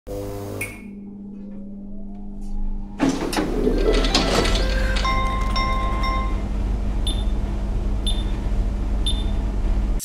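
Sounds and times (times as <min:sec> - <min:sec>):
low hum with rising tone: 0:00.1 - 0:10.0
music: 0:03.0 - 0:06.3.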